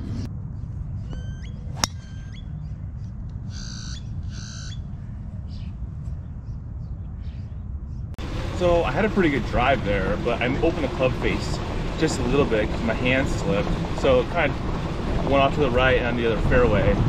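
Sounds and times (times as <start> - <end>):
low outdoor rumble: 0.0 - 17.0
birds chirping: 0.2 - 17.0
bird squawks: 3.5 - 5.7.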